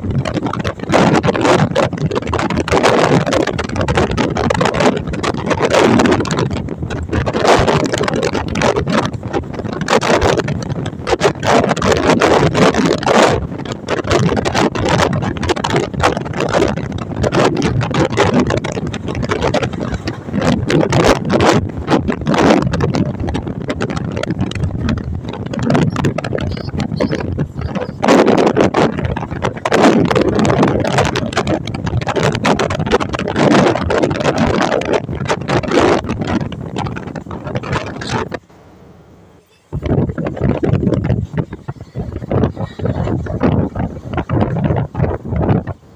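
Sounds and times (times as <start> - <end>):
track clatter knocks: 0.0 - 38.5, 39.7 - 45.8
train rumble: 0.0 - 45.9
wind buffeting microphone: 0.0 - 45.9.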